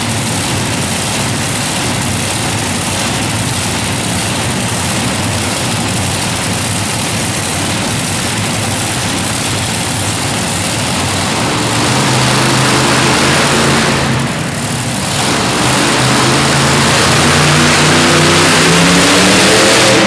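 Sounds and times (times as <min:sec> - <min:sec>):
tractor engines idling: 0:00.0 - 0:20.0.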